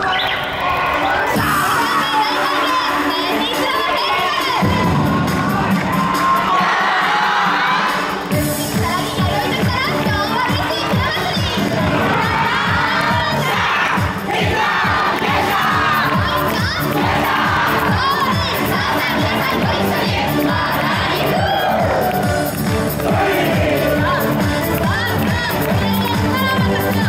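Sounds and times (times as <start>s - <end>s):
dancers shouting calls together: 0.0s - 8.2s, 9.2s - 24.2s
dance music with drum beat: 1.2s - 27.0s.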